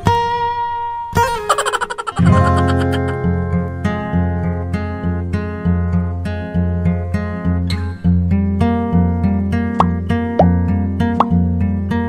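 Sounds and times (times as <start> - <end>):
acoustic guitar background music: 0.0 - 1.5, 2.2 - 12.0.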